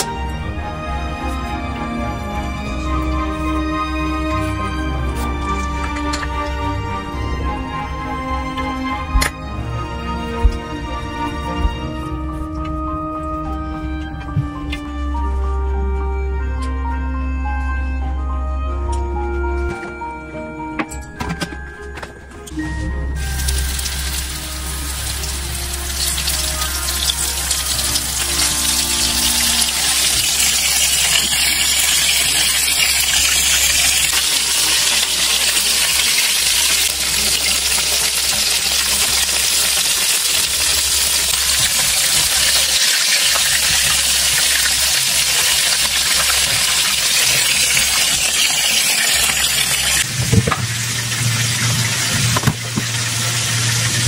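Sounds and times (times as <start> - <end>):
pastry sizzling in hot oil: 23.2 - 54.0.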